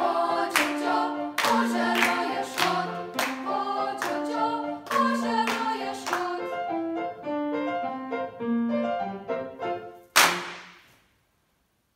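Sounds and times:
choir singing with piano: 0.0s - 9.8s
sharp crack ringing in hall: 10.0s - 11.3s.

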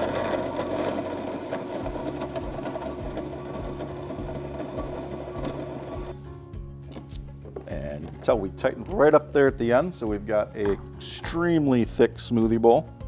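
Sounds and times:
blender motor humming: 0.0s - 6.3s.

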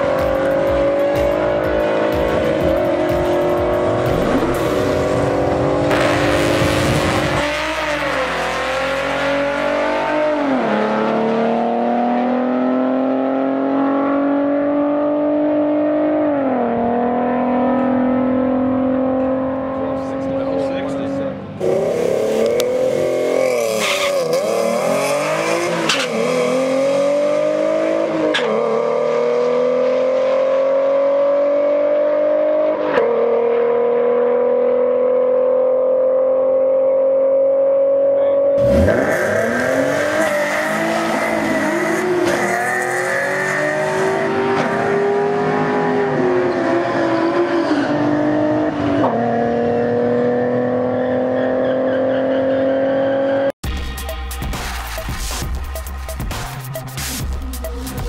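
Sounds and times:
car engine at full throttle: 0.0s - 58.0s.

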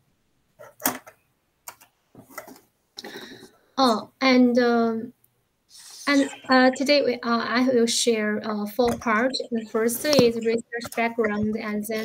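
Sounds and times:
speech: 3.8s - 5.1s, 5.8s - 12.0s.

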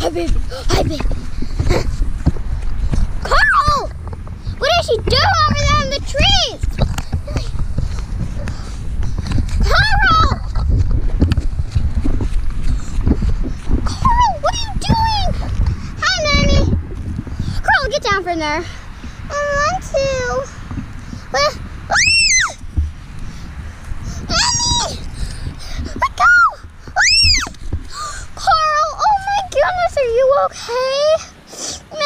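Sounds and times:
wind rumble on microphone: 0.0s - 32.0s
girl screaming: 3.2s - 3.9s, 9.6s - 10.5s, 21.9s - 22.6s, 24.3s - 25.0s, 26.0s - 27.6s.

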